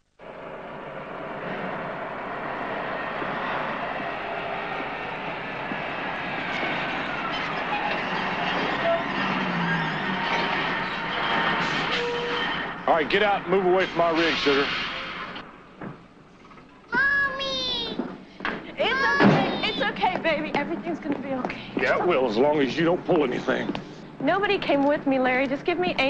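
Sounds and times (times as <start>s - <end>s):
heavy vehicle rumbling: 0.0s - 26.0s.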